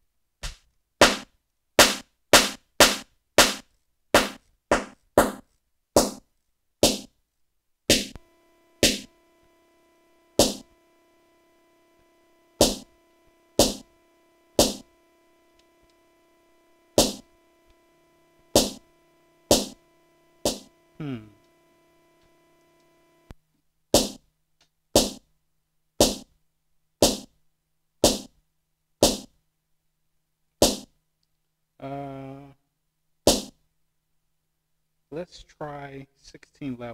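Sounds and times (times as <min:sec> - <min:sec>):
snare drum hits: 0:00.4 - 0:05.4, 0:07.9 - 0:08.2, 0:08.8 - 0:09.1, 0:10.4 - 0:10.7, 0:12.6 - 0:12.9, 0:13.6 - 0:13.9, 0:14.6 - 0:14.9, 0:17.0 - 0:17.3, 0:18.6 - 0:18.8, 0:19.5 - 0:19.8, 0:20.5 - 0:20.7
steady tone: 0:07.9 - 0:23.3.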